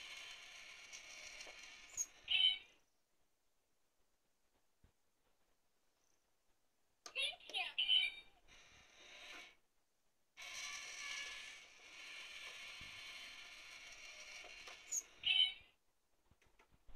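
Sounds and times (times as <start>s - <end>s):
toy motor whirring buzz: 0.0s - 2.7s, 8.5s - 9.6s, 10.4s - 15.6s.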